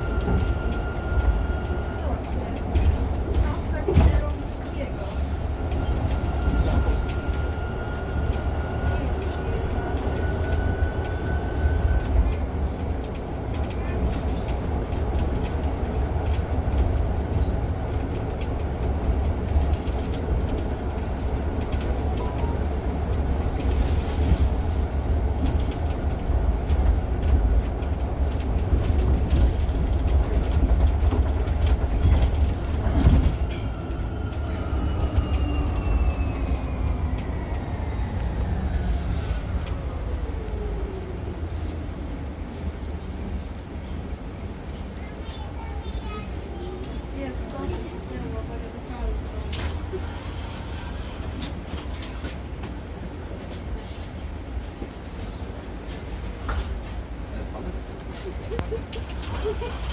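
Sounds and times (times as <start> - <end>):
low road rumble: 0.0 - 59.9.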